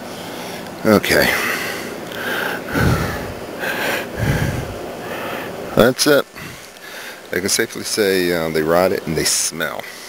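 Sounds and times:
person breathing and sniffing: 1.6s - 5.6s.

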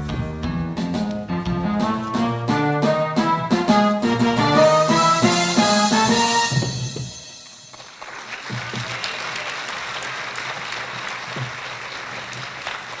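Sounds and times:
musical chord: 0.9s - 8.0s
audience applause: 7.7s - 13.0s.

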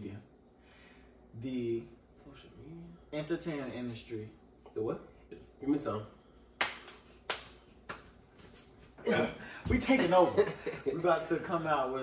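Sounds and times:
sharp hand smacks: 6.6s - 8.2s.

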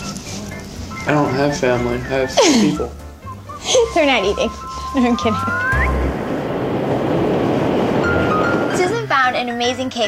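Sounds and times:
train wheels rumbling on track: 5.8s - 10.0s.

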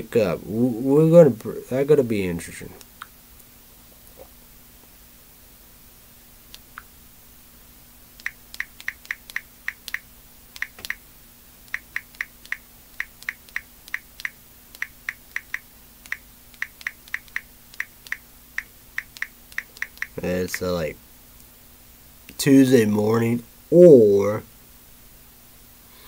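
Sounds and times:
phone keyboard clicks: 8.2s - 10.0s, 11.7s - 20.7s.

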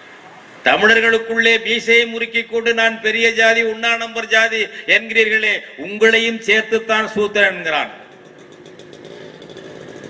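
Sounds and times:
engine running: 7.9s - 10.0s.

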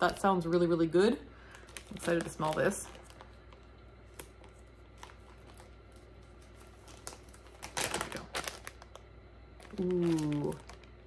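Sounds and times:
plastic packaging crinkling: 1.4s - 11.0s
loud plastic rustle: 1.5s - 9.0s, 9.6s - 11.0s.

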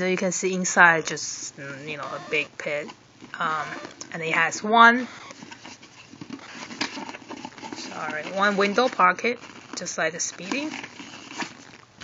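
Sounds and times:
hand rustling inside handbag: 3.3s - 12.0s.

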